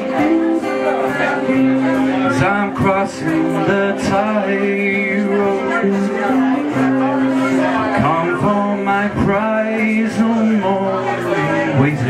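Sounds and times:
acoustic guitar: 0.0 - 12.0
man singing: 0.0 - 12.0.

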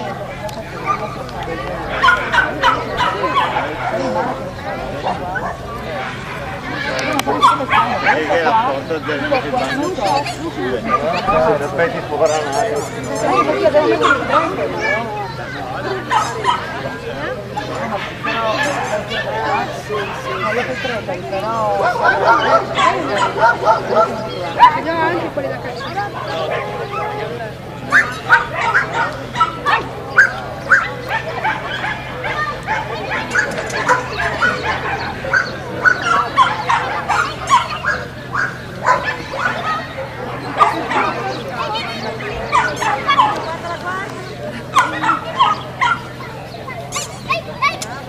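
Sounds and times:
people talking: 0.0 - 48.0
dog barking: 1.9 - 4.2, 5.3 - 9.4, 10.8 - 11.5, 13.2 - 15.0, 15.8 - 21.0, 21.8 - 24.9, 27.9 - 43.5, 44.7 - 46.2.

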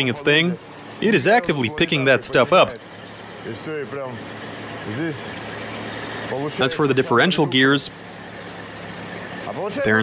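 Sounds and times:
car drivetrain humming: 0.0 - 10.0.

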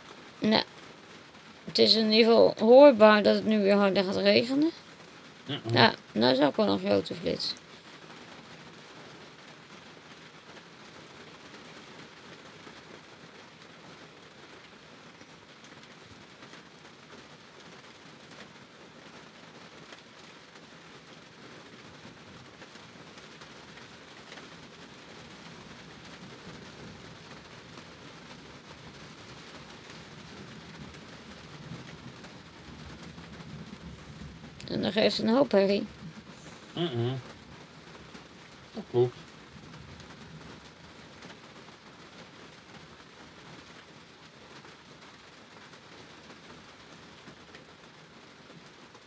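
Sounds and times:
heavy rain pouring: 0.0 - 49.0.

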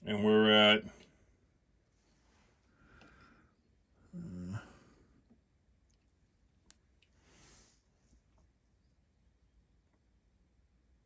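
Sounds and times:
faint click: 3.0 - 3.2, 5.3 - 7.2
man humming: 4.0 - 4.9.

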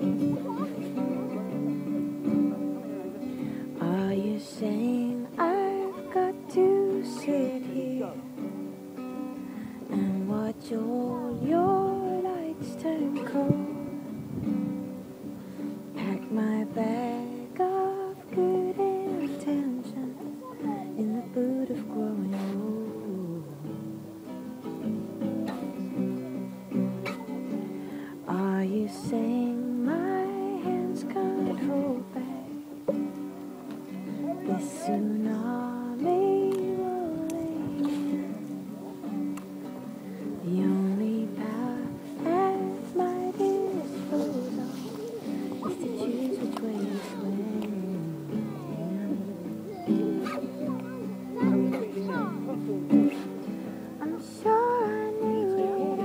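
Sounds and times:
strummed acoustic guitar: 0.0 - 56.0
woman singing slow melody: 3.4 - 15.0, 15.6 - 24.0, 28.1 - 33.2, 33.8 - 52.1, 53.0 - 56.0.

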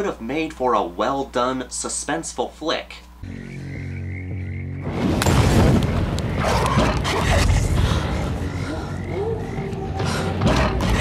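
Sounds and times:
frogs croaking: 3.2 - 5.1, 5.9 - 11.0.

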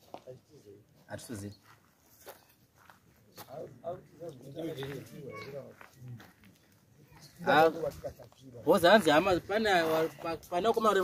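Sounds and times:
man speaking: 0.2 - 1.6, 3.4 - 6.4, 7.1 - 11.0.

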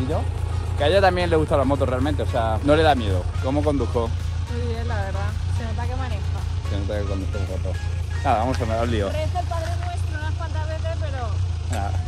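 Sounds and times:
man talking: 0.0 - 4.2, 6.7 - 9.1
steady low rumble: 0.0 - 12.0
woman talking: 4.5 - 6.5, 9.1 - 11.4.

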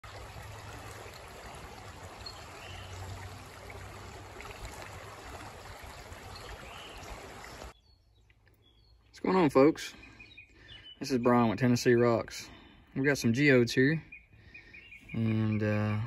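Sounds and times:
creek flowing over gravel: 0.0 - 7.8.

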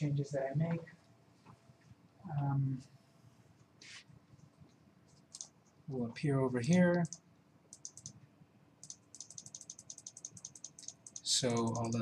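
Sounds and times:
mouse button clicking rapidly: 6.7 - 8.2, 8.8 - 12.0.

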